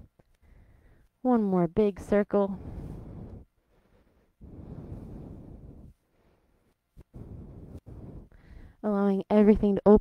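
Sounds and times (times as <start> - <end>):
woman breathing: 0.1 - 1.2, 2.5 - 8.8.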